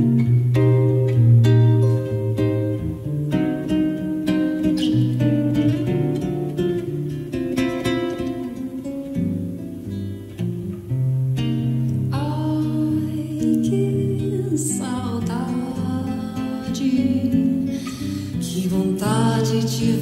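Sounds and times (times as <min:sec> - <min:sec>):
classical guitar fingerstyle: 0:00.0 - 0:20.0
woman singing: 0:12.1 - 0:20.0.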